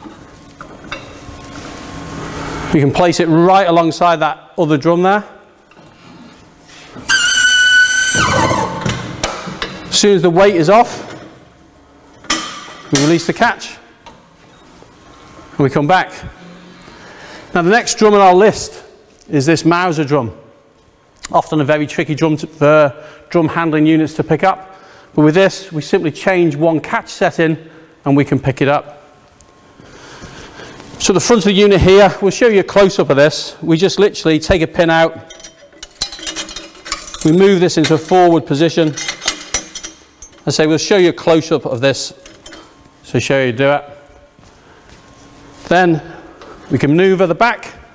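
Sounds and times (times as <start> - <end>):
hydraulic valve whistling: 7.0 - 8.9
light metallic clinking: 35.2 - 38.1.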